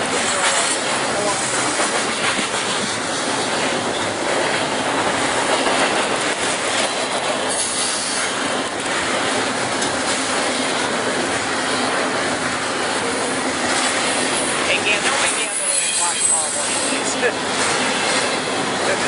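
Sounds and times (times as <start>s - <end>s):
freight train wheels on rails: 0.0s - 19.0s.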